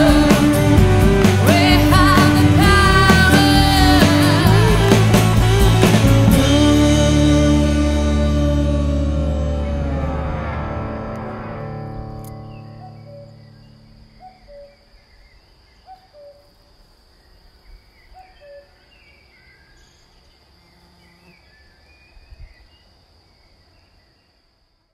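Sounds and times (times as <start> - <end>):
band chord: 0.0 - 14.2
high bird chirps: 11.9 - 16.4.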